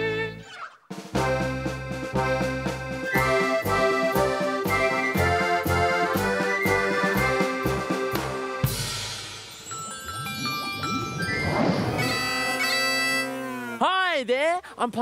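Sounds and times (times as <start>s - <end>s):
accordion playing bouncy tune: 1.2s - 8.8s, 10.4s - 13.9s
steady bass drum beat: 1.2s - 9.2s.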